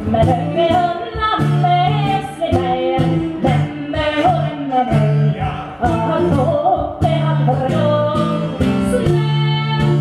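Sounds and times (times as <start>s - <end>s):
bowed string instrument: 0.0s - 10.0s
plucked lute: 0.0s - 10.0s
woman singing: 0.0s - 10.0s.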